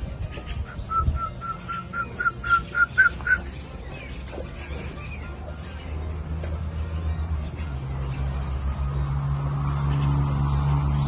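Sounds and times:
bird whistling rising notes: 0:00.6 - 0:03.6.

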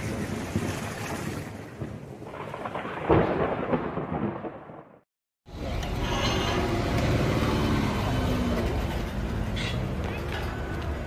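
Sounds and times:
rolling thunder: 0:00.0 - 0:05.0.

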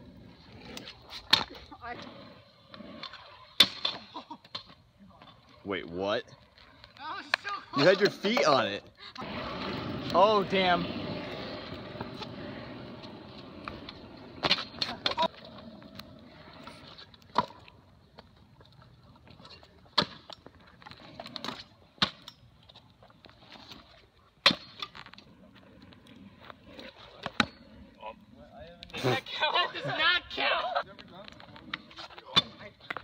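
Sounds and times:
scooter wheels rolling on asphalt: 0:00.0 - 0:33.0.

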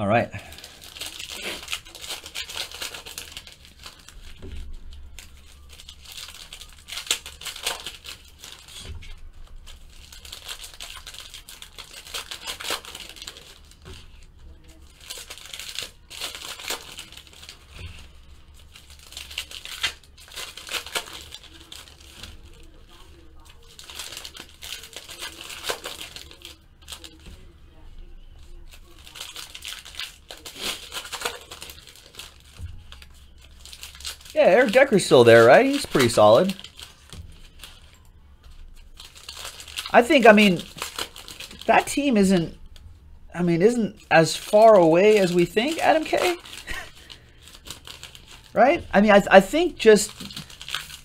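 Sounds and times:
plastic wrappers crinkling and tearing: 0:00.1 - 0:51.0.

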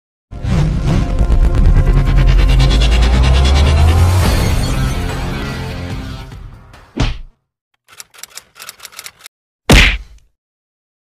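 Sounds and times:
whoosh and hit effect: 0:01.4 - 0:05.0
typewriter clicking: 0:07.8 - 0:09.3.

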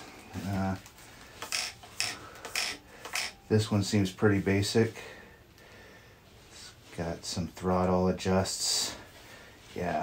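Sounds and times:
plastic transmitter rubbing rustles: 0:00.4 - 0:03.4.

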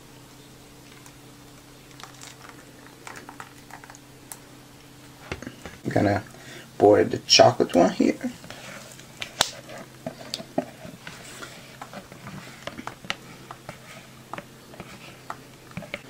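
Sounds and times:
spatula scraping bowl: 0:09.6 - 0:16.0.

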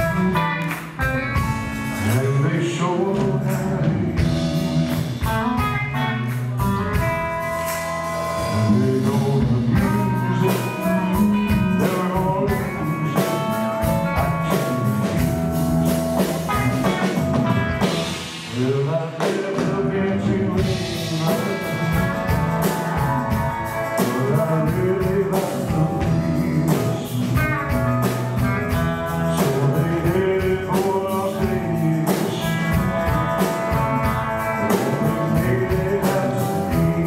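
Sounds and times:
drums: 0:00.0 - 0:37.0
electric bass: 0:00.0 - 0:37.0
electric guitar: 0:00.0 - 0:37.0
man singing: 0:00.0 - 0:37.0.

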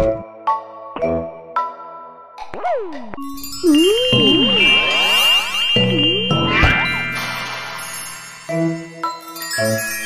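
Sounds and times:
ringing tones: 0:03.2 - 0:08.4
tinkling chimes: 0:03.3 - 0:10.0.

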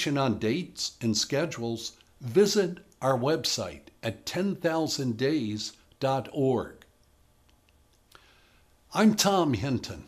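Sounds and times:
man talking: 0:00.0 - 0:06.9, 0:08.9 - 0:10.0.

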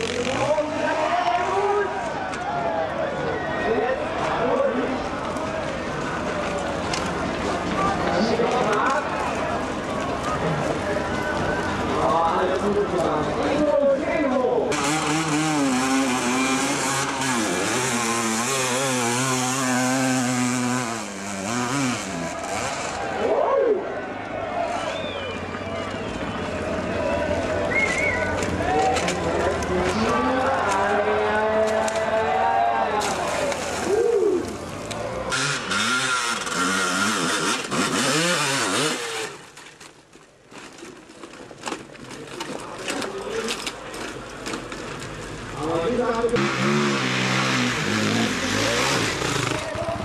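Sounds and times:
motocross bike engine revving: 0:00.0 - 0:01.1, 0:14.7 - 0:23.3, 0:34.9 - 0:39.5, 0:46.3 - 0:50.0.

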